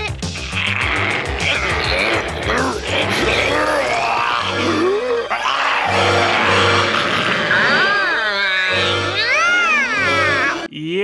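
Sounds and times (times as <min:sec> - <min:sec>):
background music: 0:00.0 - 0:10.7
cartoon ghost wailing yell: 0:00.4 - 0:10.7
man speaking: 0:01.3 - 0:04.7.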